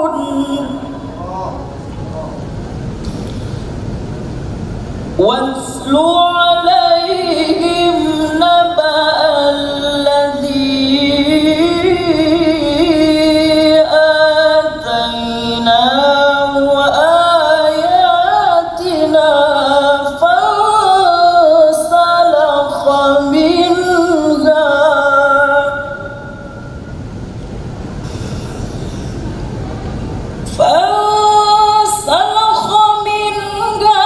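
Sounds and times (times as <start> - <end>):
low microphone rumble: 0.0 - 19.5, 21.9 - 33.9
breath hiss: 28.0 - 29.4.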